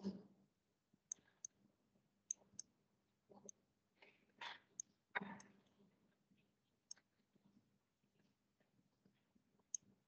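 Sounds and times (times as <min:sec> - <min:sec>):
stylus tapping tablet screen: 0:00.9 - 0:03.8, 0:04.5 - 0:10.0.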